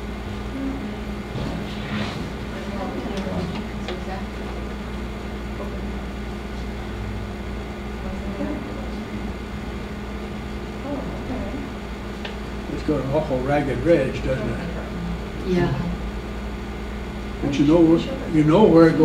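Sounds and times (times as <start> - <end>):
low room hum: 0.0 - 19.0
murmured voices: 0.5 - 6.8, 12.7 - 16.1.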